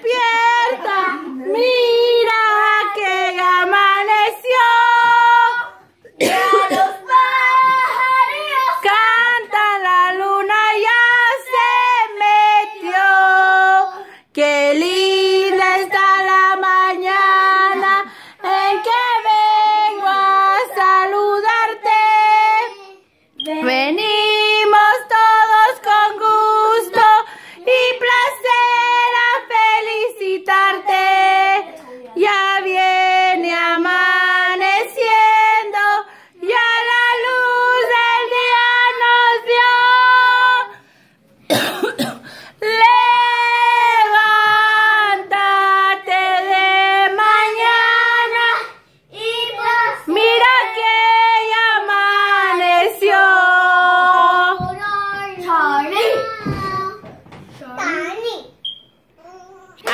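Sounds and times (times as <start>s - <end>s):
children and women singing: 0.0s - 40.9s, 41.5s - 57.2s.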